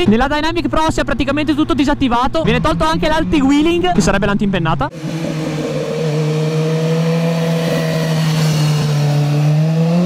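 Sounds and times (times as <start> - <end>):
motorcycle engine passing: 4.9 - 10.0.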